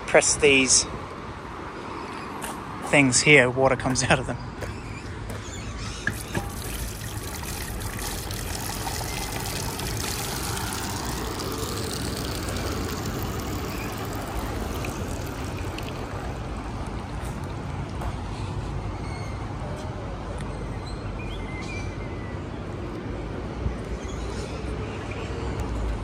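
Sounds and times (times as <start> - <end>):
water trickling onto gravel: 6.1 - 18.0.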